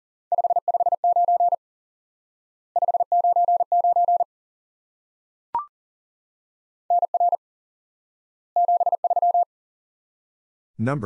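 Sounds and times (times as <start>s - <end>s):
morse code tone: 6.9s - 7.4s, 8.6s - 9.4s.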